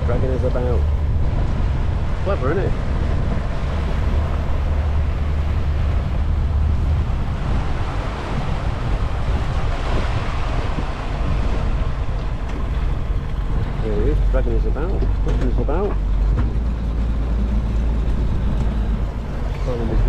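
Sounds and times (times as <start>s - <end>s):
boat engine low drone: 0.0s - 20.0s
rush of churned water: 0.0s - 20.0s
wind buffeting microphone: 0.0s - 20.0s.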